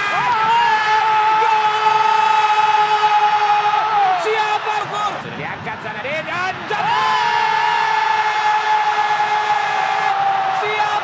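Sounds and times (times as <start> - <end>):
crowd noise: 0.0 - 11.0
commentator shouting goal: 4.0 - 7.7, 10.5 - 11.0.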